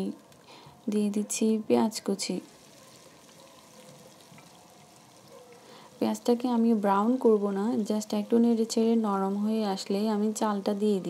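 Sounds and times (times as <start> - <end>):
onions sizzling in oil: 1.4 - 11.0.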